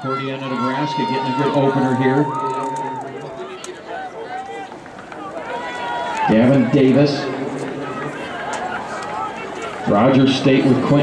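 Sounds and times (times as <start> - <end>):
spectators shouting: 0.0 - 11.0.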